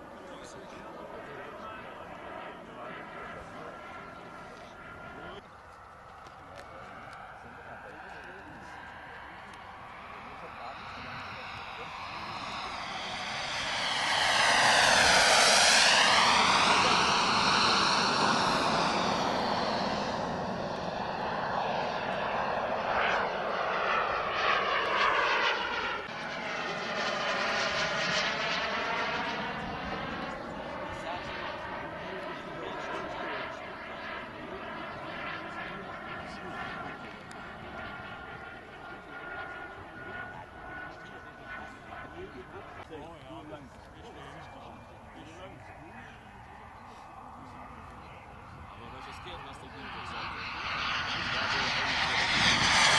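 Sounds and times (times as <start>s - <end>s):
model jet turbine whine: 0.0s - 52.9s
jet whooshing passes: 8.8s - 28.8s, 45.9s - 52.9s.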